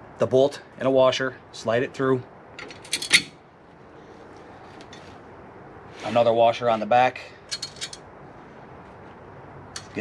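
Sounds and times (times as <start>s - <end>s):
bolt clinking on metal bracket: 2.6s - 3.4s, 7.5s - 8.0s.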